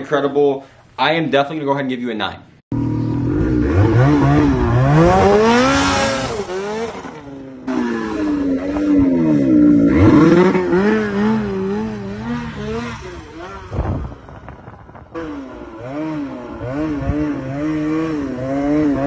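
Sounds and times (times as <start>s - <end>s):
snowmobile engine revving: 2.8s - 14.5s, 15.1s - 19.0s.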